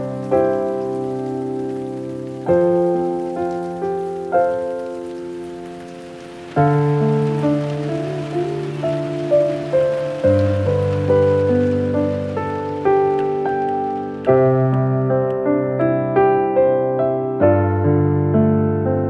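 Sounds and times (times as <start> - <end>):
rain falling: 0.0 - 17.3
slow gentle piano music: 0.0 - 19.0.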